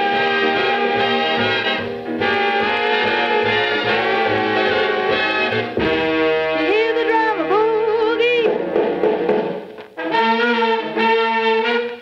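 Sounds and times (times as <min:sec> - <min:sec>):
big band swing music: 0:00.0 - 0:12.0.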